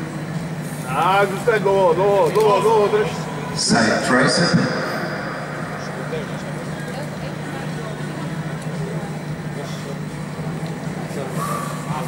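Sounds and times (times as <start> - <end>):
steady low hum: 0.0 - 12.0
crowd murmuring and calling out: 0.8 - 12.0.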